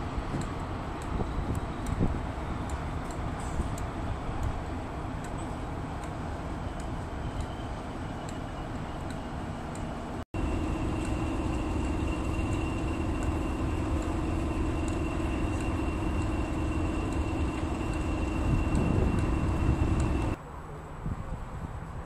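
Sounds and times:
diesel locomotive idling: 0.0 - 20.4.

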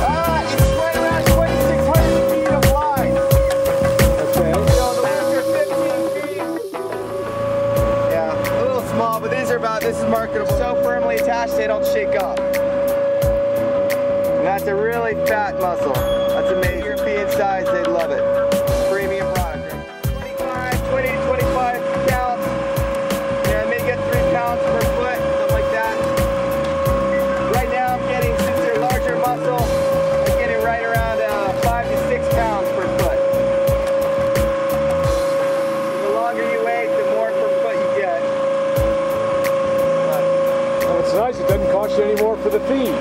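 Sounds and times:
boat machinery whining: 0.0 - 43.0.

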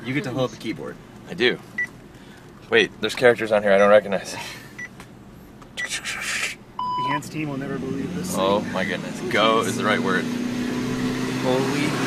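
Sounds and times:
short electronic beep: 6.8 - 7.2.

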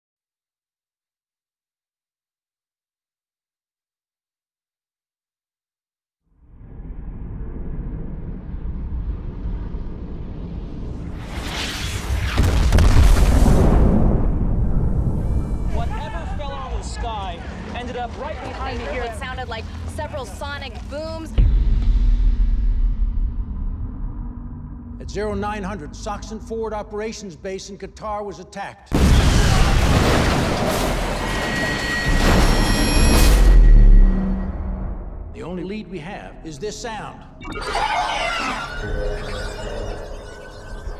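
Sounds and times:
deep rumble: 6.4 - 11.3, 19.4 - 26.5
loud booms and blasts: 10.9 - 15.7, 28.9 - 31.4
voices: 15.7 - 21.4.

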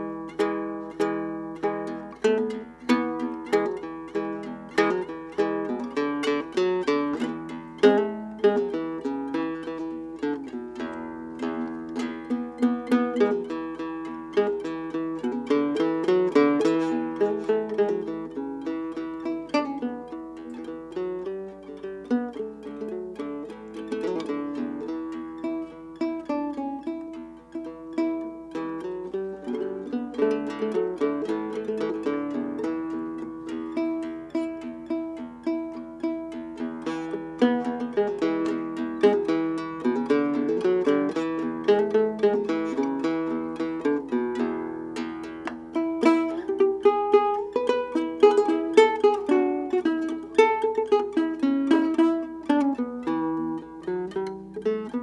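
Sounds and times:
acoustic fingerpicking: 0.0 - 55.0.

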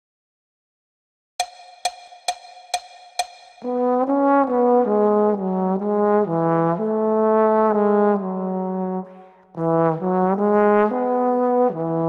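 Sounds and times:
solo trombone waltz melody: 3.6 - 12.0.

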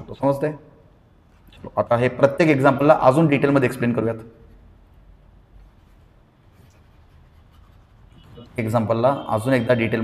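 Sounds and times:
pen scratching: 5.6 - 8.6.

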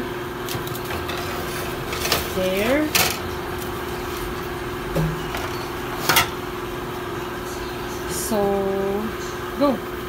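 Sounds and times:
steady hum: 0.0 - 10.0
baking sheet clinking on wire rack: 5.0 - 6.4.

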